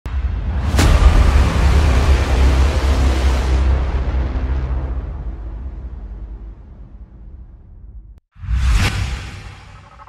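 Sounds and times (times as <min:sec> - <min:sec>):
deep rumble: 0:00.1 - 0:08.2.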